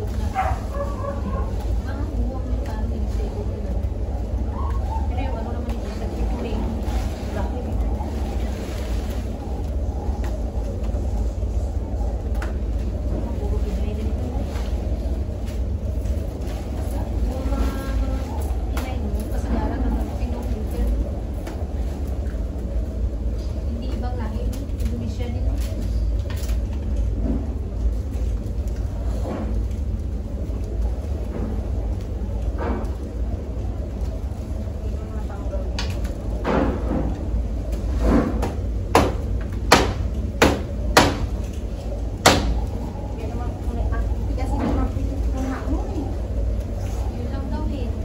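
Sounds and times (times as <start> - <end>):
faint working noises: 0.0 - 48.0
steady low rumble: 0.0 - 48.0.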